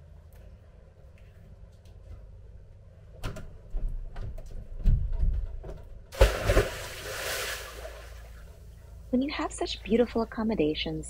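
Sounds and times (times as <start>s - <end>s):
person splashing into water: 6.2s - 8.3s.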